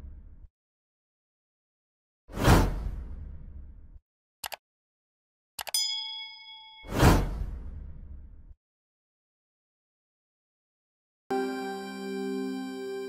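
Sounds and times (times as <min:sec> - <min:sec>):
whoosh: 0:02.3 - 0:04.0, 0:06.8 - 0:08.5
quick clicks: 0:04.4 - 0:04.6, 0:05.6 - 0:05.8
bright ding: 0:05.7 - 0:07.1.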